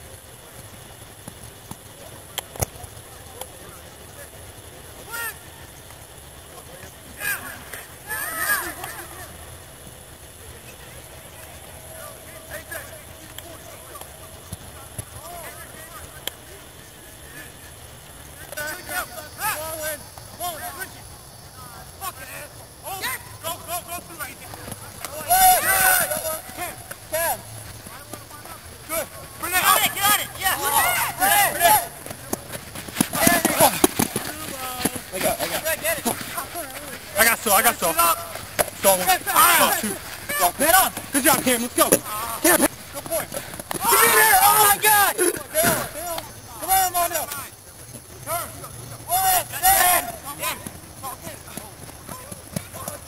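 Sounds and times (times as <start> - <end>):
distant voices of players: 0.0 - 53.0
men shouting: 25.1 - 32.2, 33.0 - 47.3, 48.3 - 50.7.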